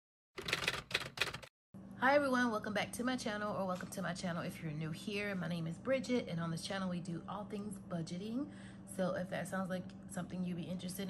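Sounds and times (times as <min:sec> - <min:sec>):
rapid clicks: 0:00.4 - 0:01.5
faint steady hum: 0:01.8 - 0:11.0.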